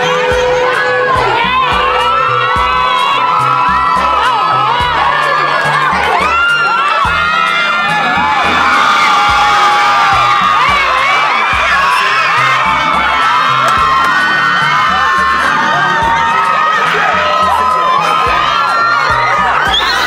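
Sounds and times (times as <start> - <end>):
crowd cheering and whooping: 0.0 - 20.0
music bass line: 0.0 - 20.0.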